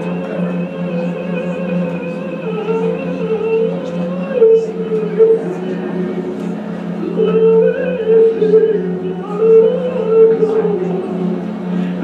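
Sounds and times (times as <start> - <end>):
cantor singing held notes: 0.0 - 12.0
steady low accompaniment: 0.0 - 12.0.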